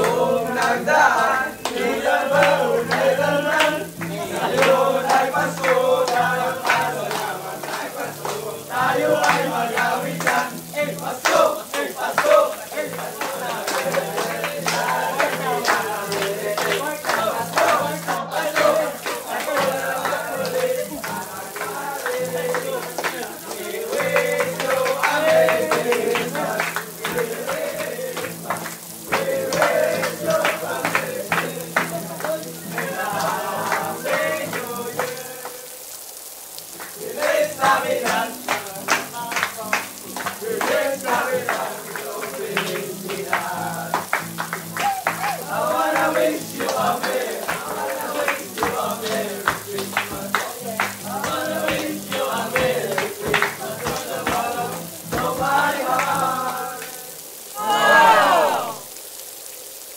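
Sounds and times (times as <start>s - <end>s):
hands clapping in rhythm: 0.0s - 35.6s, 36.7s - 57.0s
young men singing together: 0.0s - 35.9s, 36.8s - 58.8s.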